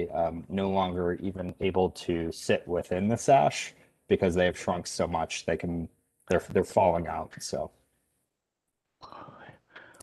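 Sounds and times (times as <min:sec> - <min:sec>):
person whispering: 0:09.0 - 0:10.0.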